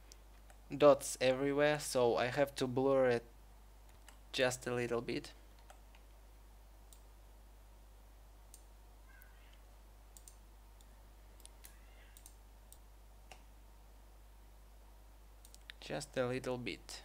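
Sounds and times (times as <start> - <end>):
faint mouse clicks: 5.6 - 6.1, 6.9 - 7.1, 8.5 - 13.5, 15.4 - 15.8.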